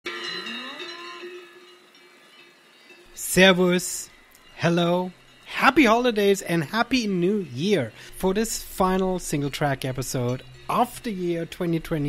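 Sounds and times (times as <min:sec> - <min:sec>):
steady ringing tones: 0:00.1 - 0:12.0.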